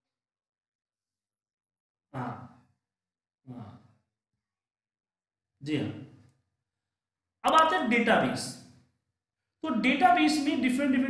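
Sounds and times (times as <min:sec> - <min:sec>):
brief vocal sounds: 0:03.5 - 0:03.9.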